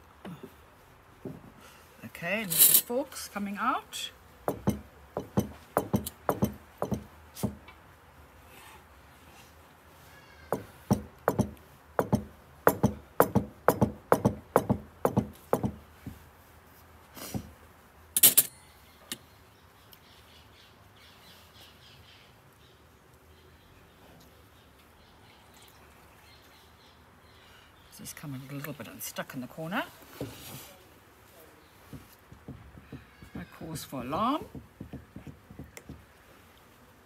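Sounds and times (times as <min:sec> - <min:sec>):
fork knocking on ceramic dish: 0:04.5 - 0:07.6.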